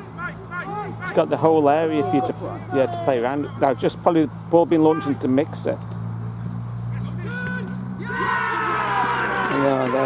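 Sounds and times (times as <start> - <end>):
people shouting and cheering: 1.8 - 3.6, 6.9 - 10.0.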